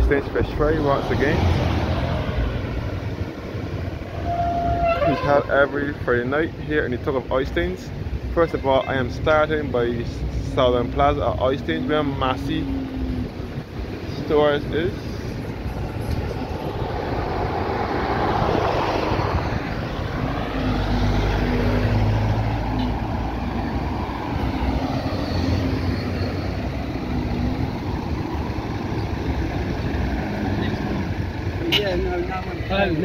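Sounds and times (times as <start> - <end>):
cars passing by: 0.0 - 33.0.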